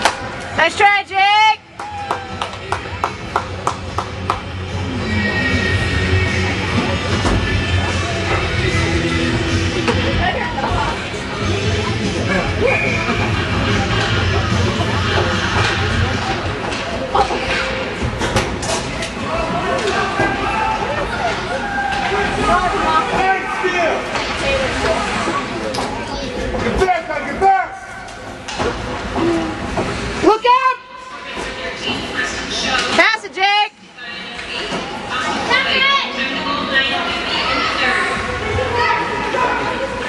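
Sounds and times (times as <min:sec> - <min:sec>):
spectators' voices: 0:00.0 - 0:40.0.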